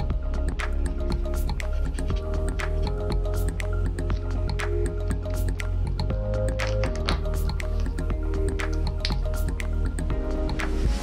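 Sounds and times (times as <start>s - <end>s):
instrumental music with sustained notes: 0.0s - 11.0s.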